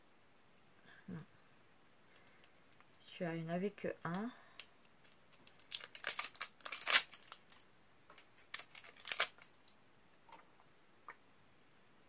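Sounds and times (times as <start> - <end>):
plastic bag rustling: 5.4 - 7.6, 8.3 - 9.5.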